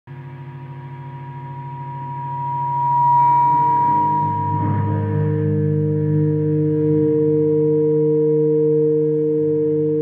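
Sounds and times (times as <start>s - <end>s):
electric guitar feedback howl: 0.1s - 10.0s
low pulsing hum: 0.1s - 10.0s
sustained low guitar notes: 0.1s - 10.0s.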